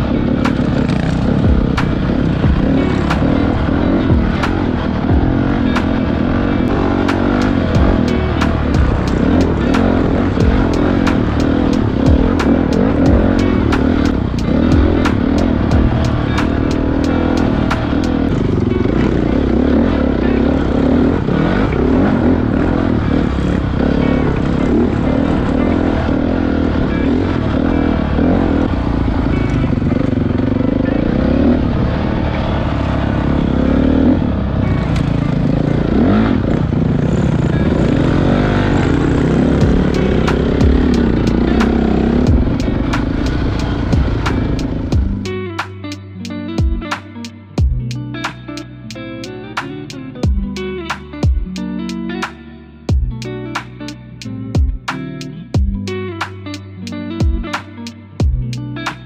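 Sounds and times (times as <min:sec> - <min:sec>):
dirt bike engine revving: 0:00.0 - 0:45.7.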